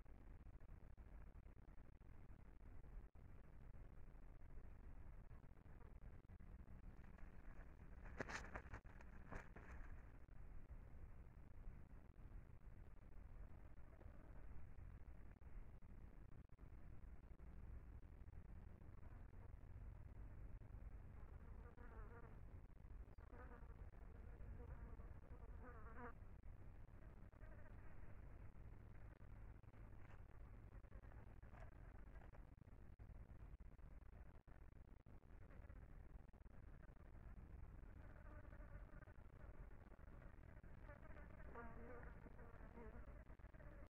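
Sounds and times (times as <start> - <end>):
low steady rumble: 0.0 - 43.9
fly buzzing: 8.0 - 10.0.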